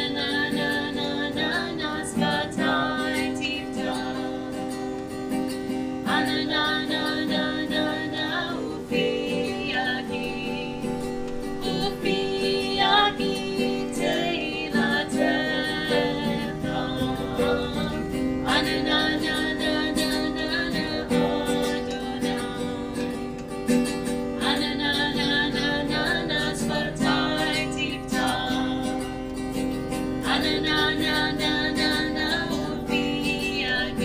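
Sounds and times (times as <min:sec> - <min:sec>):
woman singing: 0:00.0 - 0:05.1, 0:05.7 - 0:23.4, 0:24.1 - 0:34.0
acoustic guitar strumming: 0:00.0 - 0:34.0.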